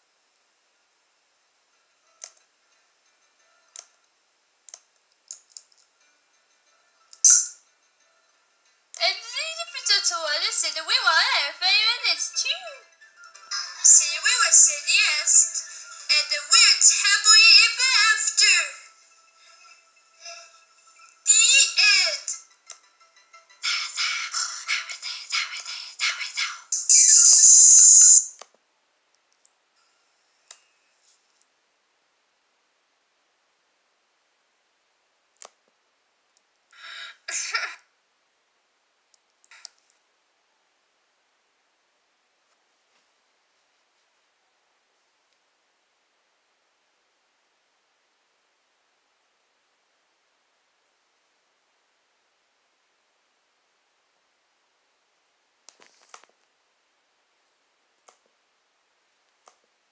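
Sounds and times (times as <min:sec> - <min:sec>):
faint clicks: 0:04.7 - 0:05.9
loud high hissing: 0:26.6 - 0:28.3.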